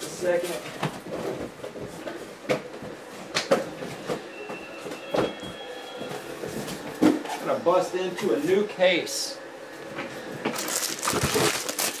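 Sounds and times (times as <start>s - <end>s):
cardboard packaging rustling: 10.5s - 12.0s.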